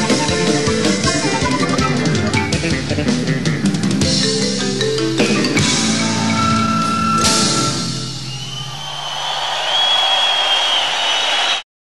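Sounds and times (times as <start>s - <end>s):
audience applauding and cheering: 6.0s - 11.7s
long high whistle: 6.8s - 11.6s.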